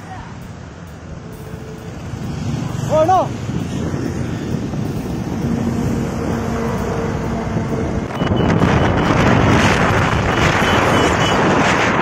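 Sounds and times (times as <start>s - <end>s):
motorbike engine and road rumble: 0.0s - 12.0s
wind rushing over microphone: 1.9s - 12.0s.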